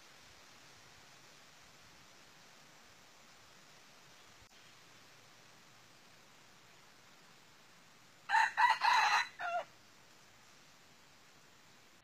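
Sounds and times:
rooster crowing: 8.3s - 9.7s.

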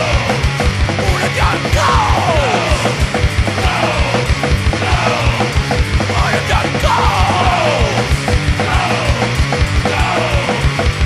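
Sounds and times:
fast loud drumming: 0.0s - 11.0s
hardcore punk song: 0.0s - 11.0s.

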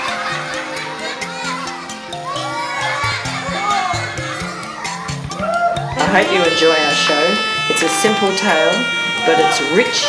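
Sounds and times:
background music: 0.0s - 10.0s
children shouting together: 0.0s - 10.0s.

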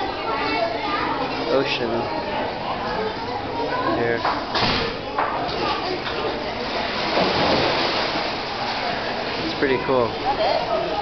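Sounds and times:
water rushing and splashing: 5.8s - 11.0s.

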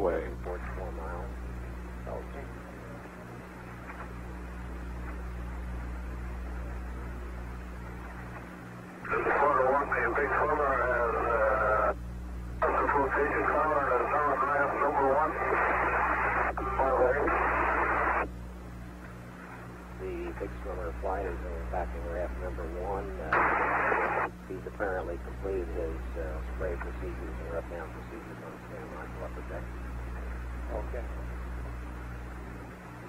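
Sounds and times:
man talking over radio: 0.0s - 1.4s, 2.1s - 2.6s, 9.1s - 12.0s, 12.6s - 18.2s, 20.0s - 29.7s, 30.7s - 31.3s
low buzzing hum: 0.0s - 33.0s
radio hiss: 9.0s - 12.0s, 12.6s - 18.3s, 19.9s - 31.6s.

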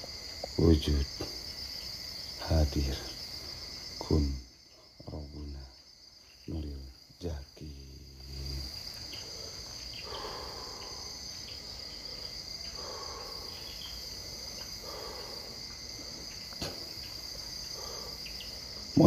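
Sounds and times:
crickets trilling: 0.0s - 19.0s
faint muffled sounds: 0.0s - 19.0s.

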